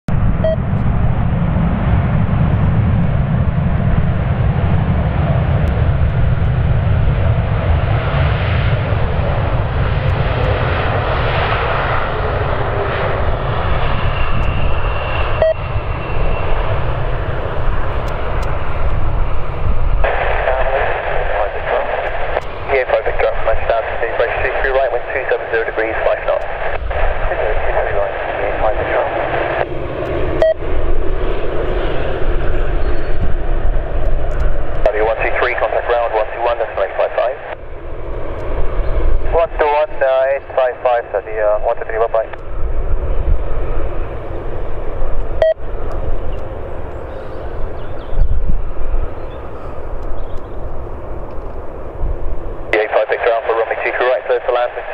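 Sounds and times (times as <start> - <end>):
jet engines low rumble: 0.1 - 54.9
radio voices: 17.0 - 29.8, 34.8 - 37.6, 39.2 - 42.5, 52.6 - 54.9.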